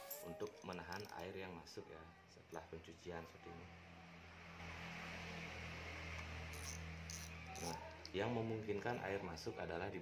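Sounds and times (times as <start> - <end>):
fishing reel clicking: 6.5 - 7.9.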